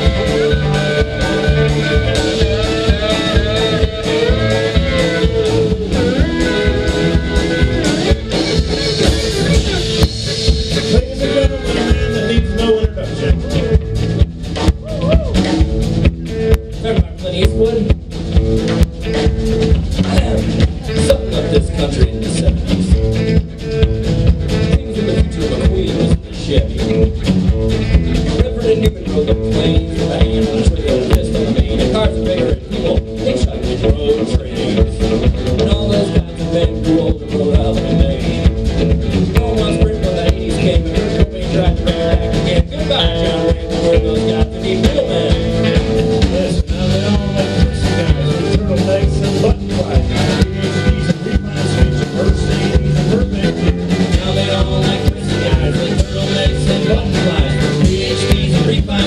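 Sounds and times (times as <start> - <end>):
drums keeping steady beat: 0.0 - 59.0
electric guitar: 0.0 - 59.0
pedal steel guitar: 0.0 - 59.0
upright bass: 0.0 - 59.0.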